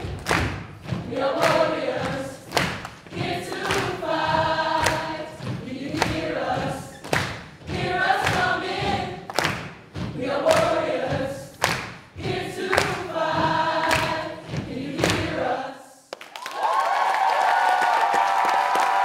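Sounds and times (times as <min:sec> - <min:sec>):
percussive stomps: 0:00.0 - 0:15.4
group singing: 0:00.0 - 0:16.1.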